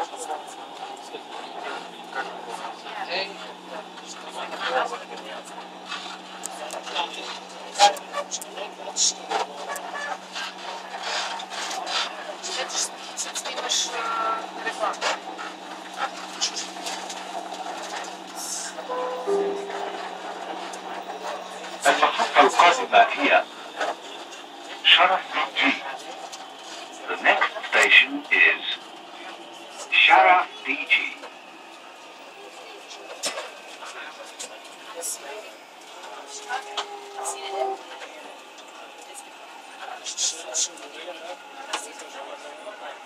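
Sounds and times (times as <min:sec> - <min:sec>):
train cabin low hum: 0:00.0 - 0:43.0
indistinct voices: 0:18.2 - 0:26.3, 0:35.0 - 0:43.0.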